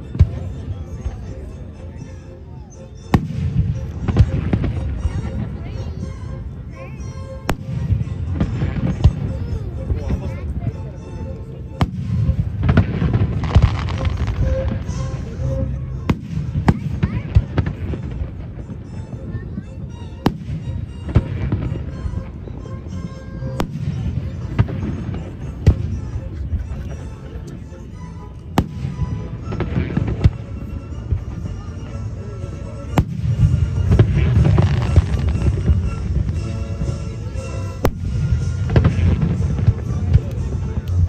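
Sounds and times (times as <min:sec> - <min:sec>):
fireworks bursting: 0:11.8 - 0:18.9, 0:28.6 - 0:31.4, 0:32.9 - 0:41.0.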